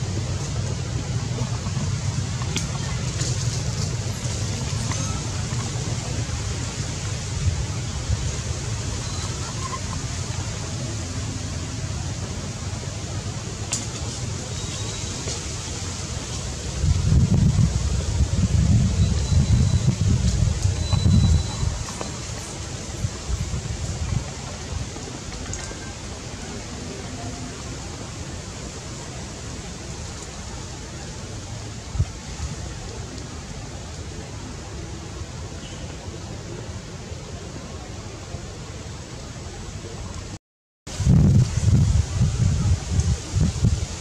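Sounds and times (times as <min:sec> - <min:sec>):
outdoor hiss: 0:00.0 - 0:44.0
wind buffeting microphone: 0:16.3 - 0:30.8, 0:40.9 - 0:44.0.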